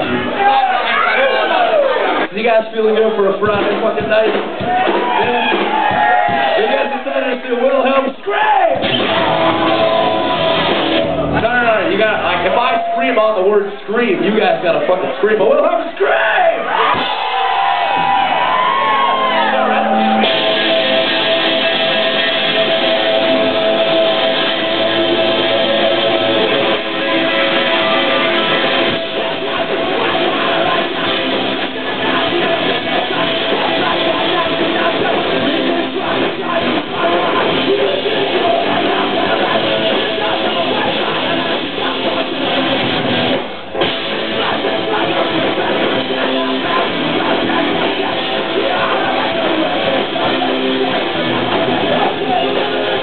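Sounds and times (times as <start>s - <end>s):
punk band with electric guitars: 0.0s - 53.0s.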